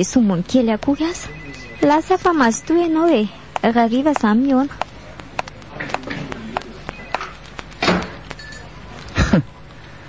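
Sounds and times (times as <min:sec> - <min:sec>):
faint high telephone tone: 0:00.9 - 0:03.4, 0:06.8 - 0:07.5, 0:08.4 - 0:08.8.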